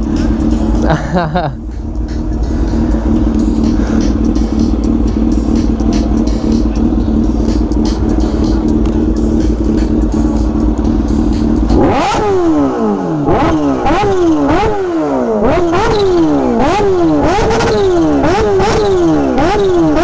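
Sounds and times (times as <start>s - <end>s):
motorcycle engine revving: 0.0s - 20.0s.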